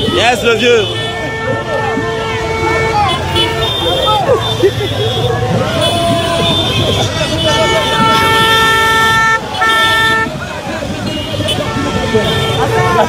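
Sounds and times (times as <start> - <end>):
street noise: 0.0 - 13.0
vehicle horn honking: 0.0 - 13.0.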